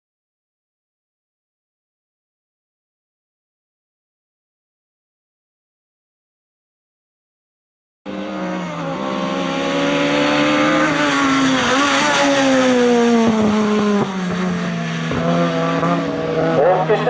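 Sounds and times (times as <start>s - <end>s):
race car engine at high revs: 8.1s - 17.0s.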